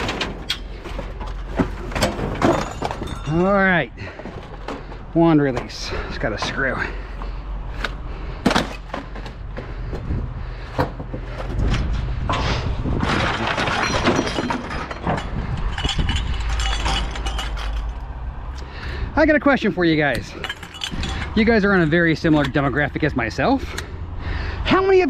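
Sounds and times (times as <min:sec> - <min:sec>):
scrap metal clanking: 0:00.0 - 0:10.1, 0:10.7 - 0:18.2, 0:20.0 - 0:22.9
engine humming: 0:00.0 - 0:24.8.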